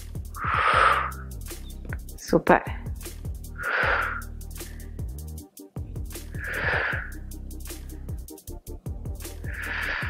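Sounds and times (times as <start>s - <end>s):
workout music with low beat: 0.0s - 10.0s
loud breathy breath: 0.3s - 1.4s, 3.5s - 5.2s, 6.2s - 7.2s, 9.3s - 10.0s.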